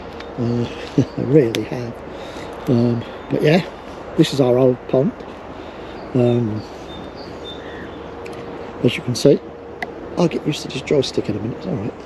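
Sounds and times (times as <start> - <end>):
faint steady hum: 0.0 - 12.0
steady outdoor hiss: 0.0 - 12.0
man speaking: 0.4 - 5.3, 6.1 - 6.8, 8.7 - 9.4, 10.2 - 12.0
bird chirps: 5.7 - 9.4.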